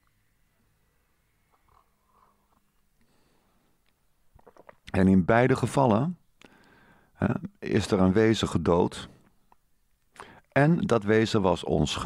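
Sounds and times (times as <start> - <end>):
man speaking: 4.9 - 6.2, 7.2 - 9.2, 10.6 - 12.0.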